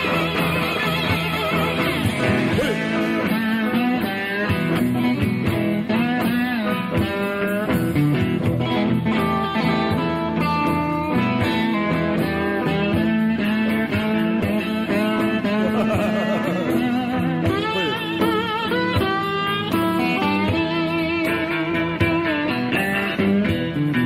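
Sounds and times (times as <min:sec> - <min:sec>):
blues band playing: 0:00.0 - 0:24.0
electric guitar lead with bent notes: 0:00.0 - 0:24.0.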